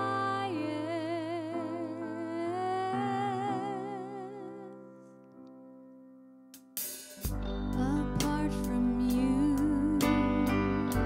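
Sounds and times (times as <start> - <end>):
woman singing with vibrato: 7.8 - 10.8.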